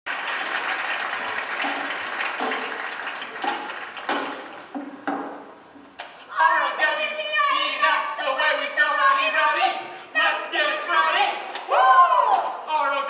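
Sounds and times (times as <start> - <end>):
audience applauding: 0.1 - 4.8.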